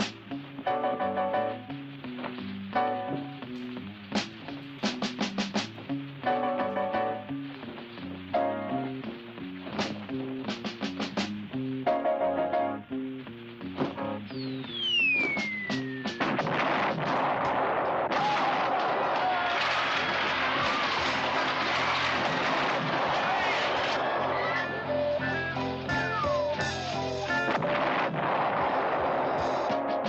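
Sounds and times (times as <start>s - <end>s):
sharp bangs: 13.8s - 24.3s
descending whistle: 14.3s - 16.3s
dense noisy battle din: 16.0s - 25.1s, 26.6s - 30.0s.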